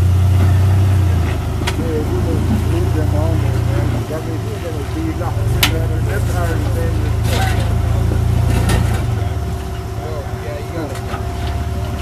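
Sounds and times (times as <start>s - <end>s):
truck engine idling: 0.0s - 12.0s
faint voices: 1.1s - 12.0s.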